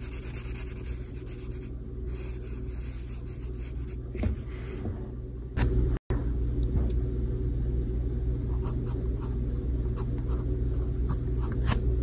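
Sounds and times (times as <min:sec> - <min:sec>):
pencil lead on paper: 0:00.0 - 0:04.0.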